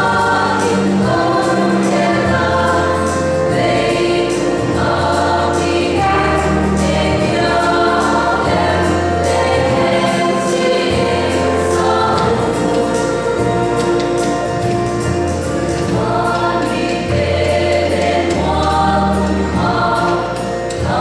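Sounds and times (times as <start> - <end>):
women's choir singing gospel: 0.0 - 21.0.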